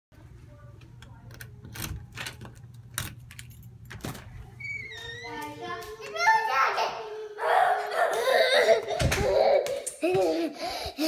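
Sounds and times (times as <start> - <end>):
keys jangling: 1.7 - 4.2.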